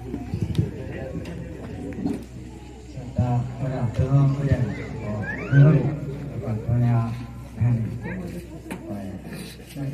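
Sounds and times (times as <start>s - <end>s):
man talking into microphone: 2.9s - 9.9s.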